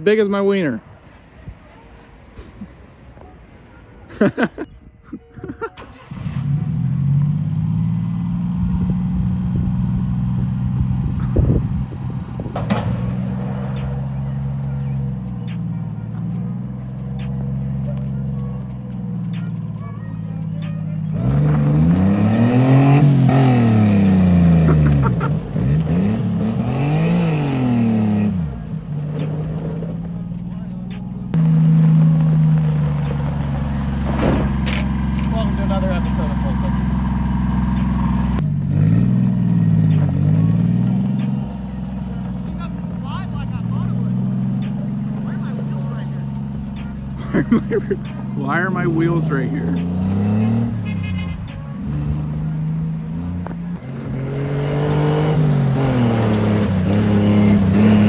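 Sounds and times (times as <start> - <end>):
small truck engine revving: 5.8 - 58.0
tyres on gravel: 12.3 - 58.0.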